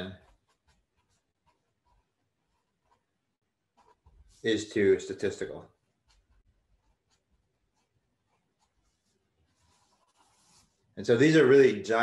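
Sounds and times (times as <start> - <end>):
felt-tip marker writing on paper: 0.0 - 4.4, 5.9 - 10.8.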